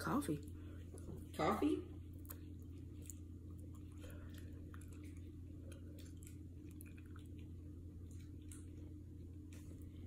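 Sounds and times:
faint low hum: 0:00.0 - 0:10.0
mouth clicks and smacks chewing: 0:02.1 - 0:10.0.

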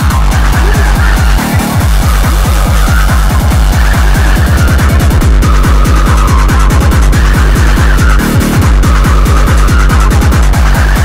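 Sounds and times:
fast distorted kick drum: 0:00.0 - 0:11.0
harsh noisy synth: 0:00.0 - 0:11.0.

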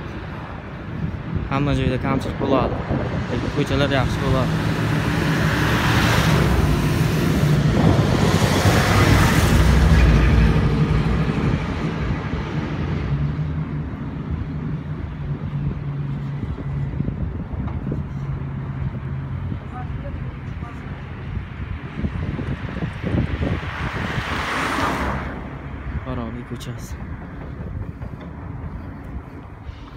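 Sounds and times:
cars and truck driving past: 0:00.0 - 0:29.9
traffic noise: 0:00.0 - 0:29.9.

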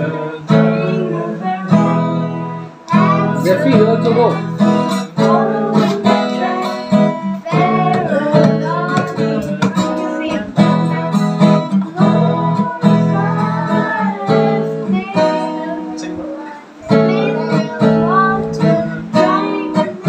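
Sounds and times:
acoustic guitar strumming chords: 0:00.0 - 0:20.0
boy singing: 0:00.0 - 0:20.0.

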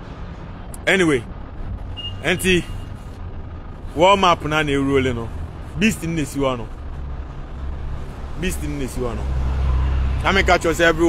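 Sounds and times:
city street traffic rumble: 0:00.0 - 0:11.0
vehicle passing: 0:00.0 - 0:11.0.

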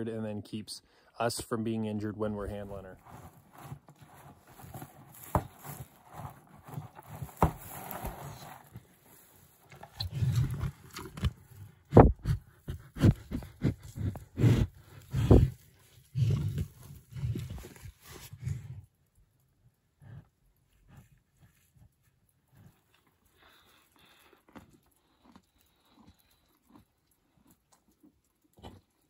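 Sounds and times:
cow chewing: 0:02.2 - 0:29.0
hay rustling: 0:03.0 - 0:09.6.

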